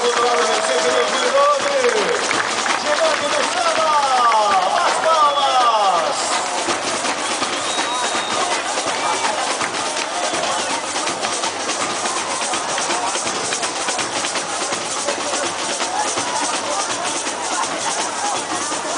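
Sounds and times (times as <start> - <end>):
drum ensemble with bass drums: 0.0 - 18.9.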